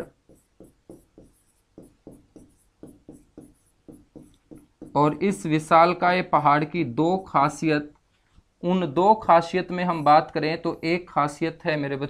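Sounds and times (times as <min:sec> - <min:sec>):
pen scratching on whiteboard: 0:00.0 - 0:05.4.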